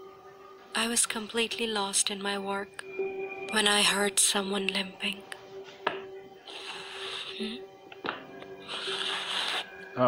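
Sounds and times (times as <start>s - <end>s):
music drone: 2.7s - 10.0s.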